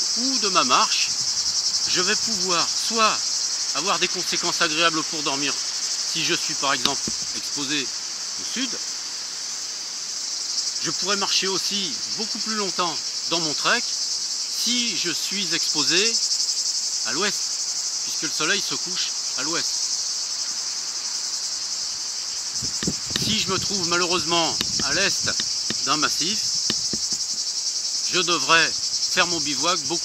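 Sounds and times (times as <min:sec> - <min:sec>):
insects singing: 0:00.0 - 0:30.0
soft low knocks: 0:06.8 - 0:07.4, 0:22.6 - 0:27.4
man's voice: 0:23.1 - 0:26.5.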